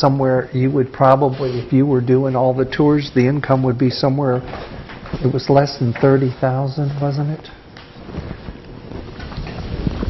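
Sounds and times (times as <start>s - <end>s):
low rumbling on microphone: 8.0s - 10.0s.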